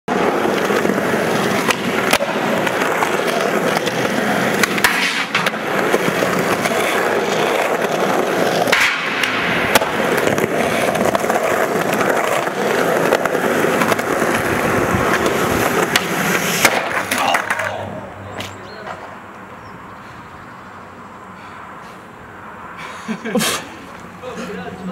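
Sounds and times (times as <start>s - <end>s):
skateboard wooden clacks: 0.1s - 19.4s
skateboard wheels rolling on concrete: 0.1s - 24.9s.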